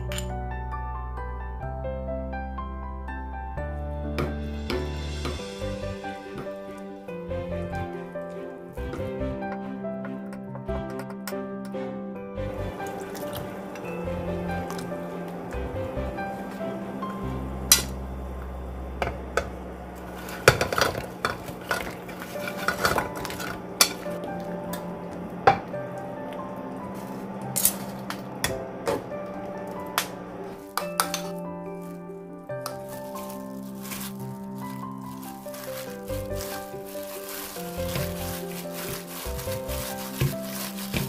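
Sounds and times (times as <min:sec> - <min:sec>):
background music with held notes: 0:00.0 - 0:41.0
gloved hand squishing meat: 0:12.8 - 0:13.7, 0:30.6 - 0:41.0
metal tongs clinking: 0:30.8 - 0:31.4.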